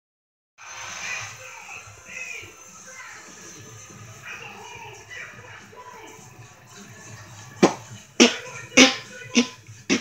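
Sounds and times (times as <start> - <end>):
hip-hop music from television: 0.6 - 10.0.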